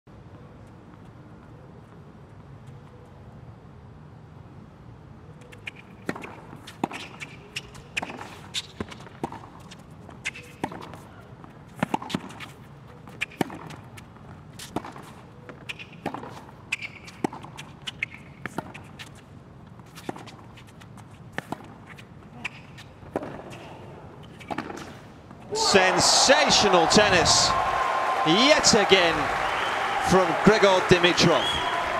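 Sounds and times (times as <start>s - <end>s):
arena background: 25.5s - 31.9s.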